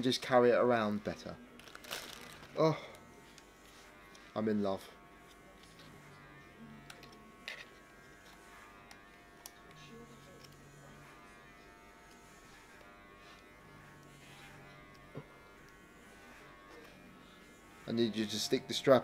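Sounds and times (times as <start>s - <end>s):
electric hair clippers buzzing: 0.6s - 19.0s.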